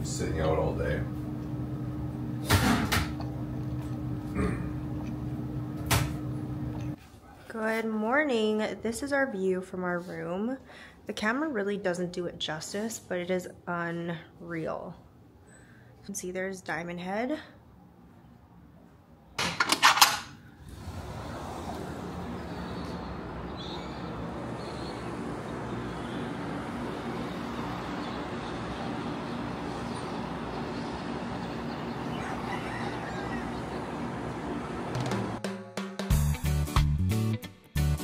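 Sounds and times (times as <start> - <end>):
low room hum: 0.0 - 35.4
clatter of sharp clicks and knocks: 19.4 - 20.3.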